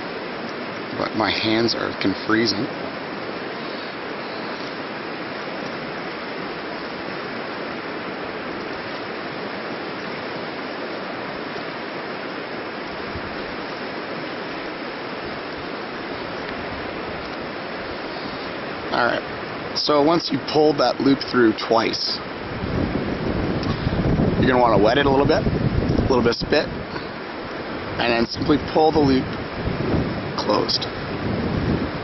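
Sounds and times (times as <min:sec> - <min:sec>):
river water rushing: 0:00.0 - 0:32.0.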